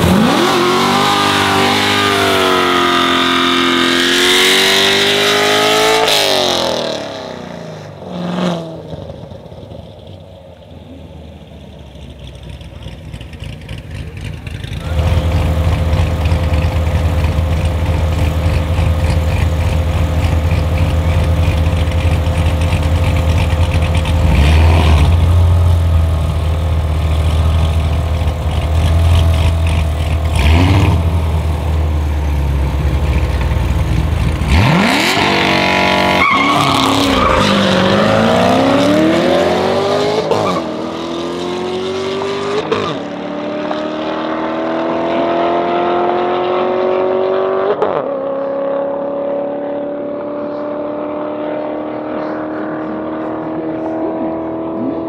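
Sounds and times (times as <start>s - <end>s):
cars launching and accelerating: 0.0s - 55.0s
engines revving: 0.0s - 55.0s
sports car engines idling: 9.2s - 24.4s, 25.0s - 34.5s, 51.9s - 55.0s.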